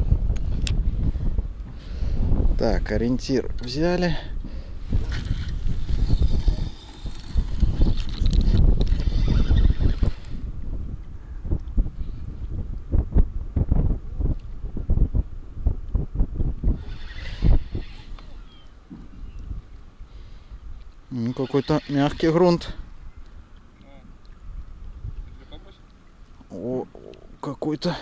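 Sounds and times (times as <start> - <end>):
wind buffeting microphone: 0.0 - 21.1, 24.3 - 25.7.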